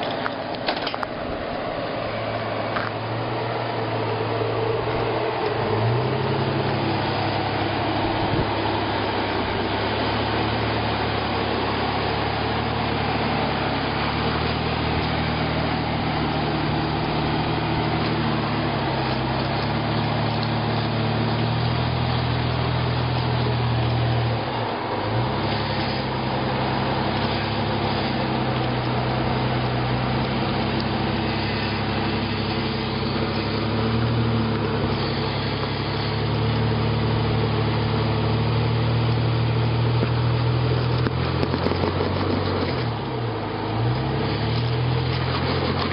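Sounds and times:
car engine running at low revs: 0.0s - 45.9s.

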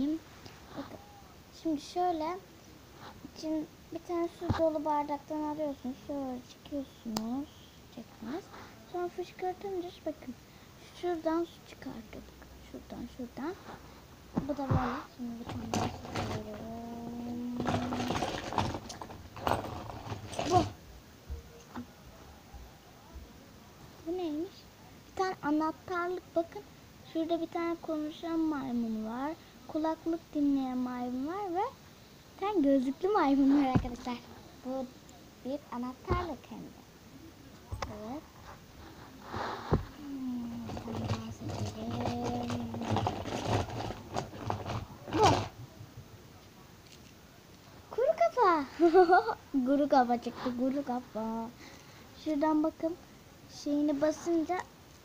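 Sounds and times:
handling knocks and rustles: 4.2s - 4.9s, 13.5s - 21.9s, 33.4s - 34.3s, 37.7s - 45.6s
plastic crinkling and clicking: 40.6s - 45.5s.

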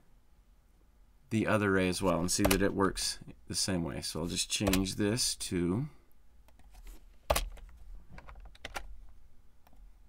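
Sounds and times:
computer keyboard key clicks: 4.6s - 4.9s.

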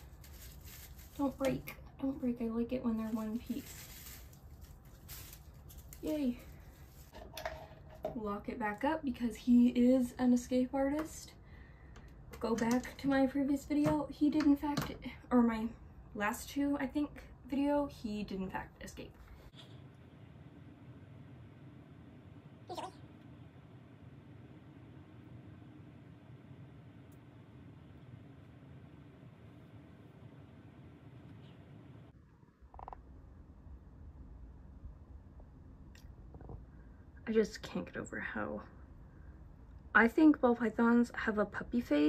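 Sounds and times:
snake skin rustling: 0.0s - 1.4s, 3.1s - 7.1s
low steady hum: 0.0s - 42.0s.

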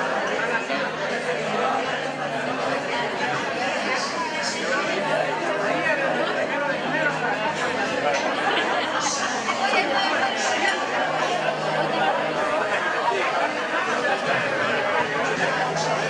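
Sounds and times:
chatter of overlapping voices: 0.0s - 16.0s.

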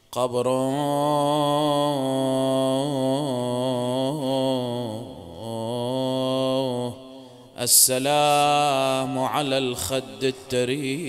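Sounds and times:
man chanting a mourning lament: 0.2s - 11.0s.

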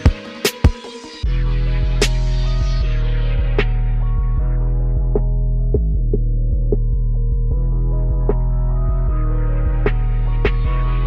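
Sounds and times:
low synth notes: 0.0s - 11.0s
deep sustained bass: 1.2s - 11.0s.

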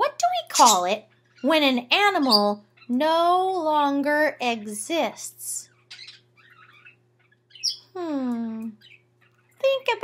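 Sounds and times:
low electrical hum: 0.0s - 10.0s
person humming hmm: 7.9s - 8.8s.

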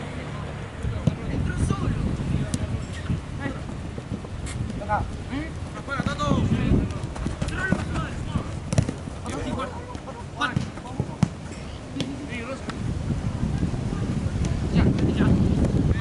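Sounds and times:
players shouting: 4.8s - 12.2s
foot kicking football: 5.9s - 12.8s.

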